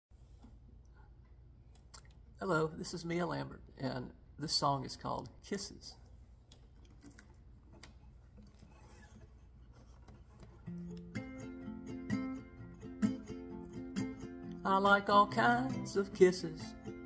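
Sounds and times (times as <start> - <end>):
acoustic guitar chords: 10.6 - 17.0.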